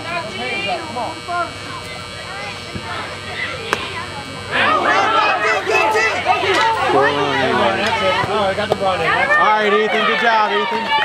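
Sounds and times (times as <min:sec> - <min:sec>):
spectators shouting and cheering: 0:00.0 - 0:11.0
bat striking baseball: 0:03.7 - 0:03.9.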